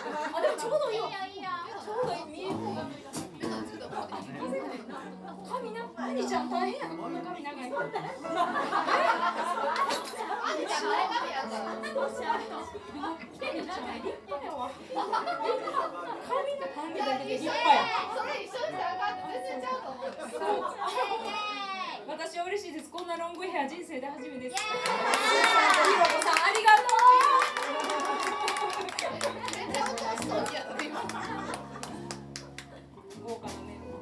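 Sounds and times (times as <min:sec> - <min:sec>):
people talking excitedly: 0:00.0 - 0:32.0.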